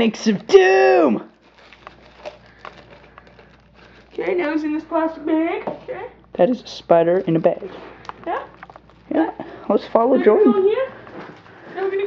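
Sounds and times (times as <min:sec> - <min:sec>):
plastic bag crinkling: 0:00.5 - 0:05.5, 0:07.2 - 0:09.9.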